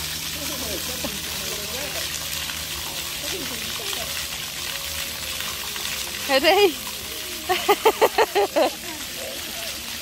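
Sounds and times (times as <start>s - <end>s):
water jets spraying: 0.0s - 10.0s.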